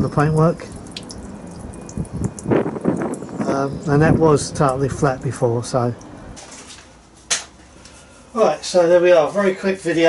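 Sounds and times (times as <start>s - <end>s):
water trickling and dripping: 0.0s - 6.4s.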